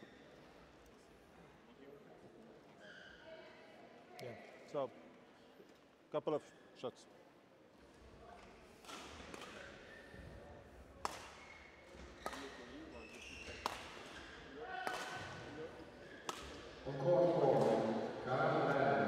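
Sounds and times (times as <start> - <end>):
badminton racket hitting shuttlecock: 13.6 - 14.2.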